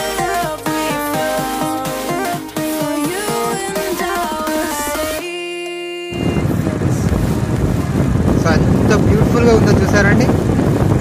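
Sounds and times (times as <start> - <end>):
electronic music: 0.0 - 9.5
vehicle road rumble: 6.2 - 11.0
wind buffeting microphone: 6.2 - 11.0.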